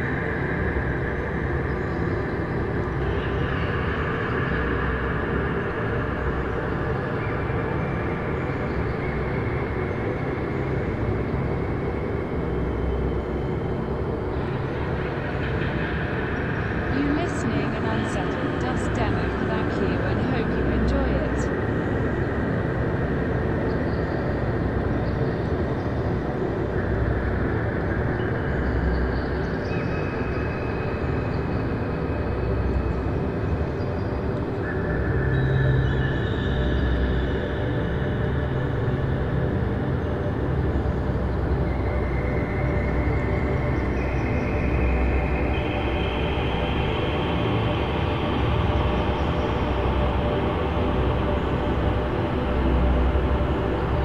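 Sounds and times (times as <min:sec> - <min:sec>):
dark ambient drone music: 0:00.0 - 0:54.0.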